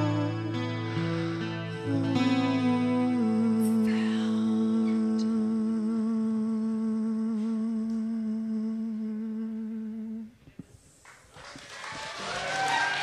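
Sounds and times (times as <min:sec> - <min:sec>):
live music held note: 0:00.0 - 0:06.0.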